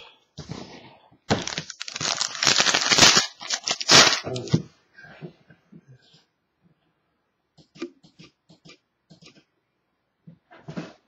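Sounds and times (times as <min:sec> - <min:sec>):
foil wrapper tearing and crinkling: 0:01.3 - 0:04.6.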